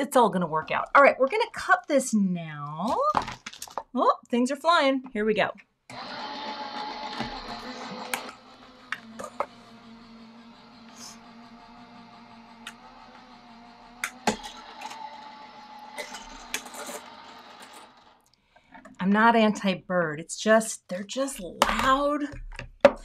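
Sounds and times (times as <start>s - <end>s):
machine motor humming: 5.9s - 18.2s.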